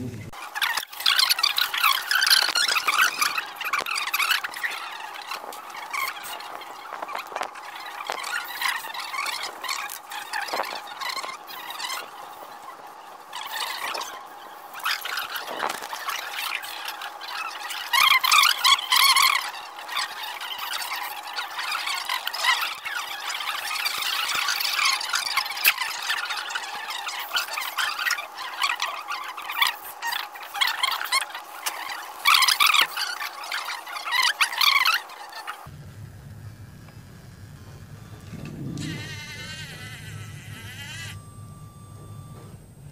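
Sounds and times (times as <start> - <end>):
robot motors whirring and squeaking: 0.4 - 35.7, 36.8 - 42.7.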